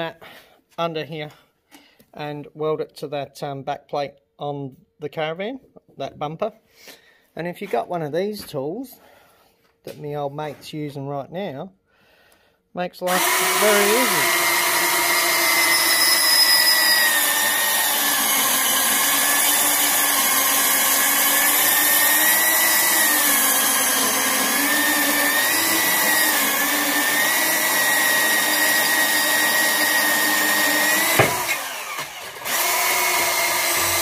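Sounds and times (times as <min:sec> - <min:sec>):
band saw cutting steel: 0:13.1 - 0:34.0.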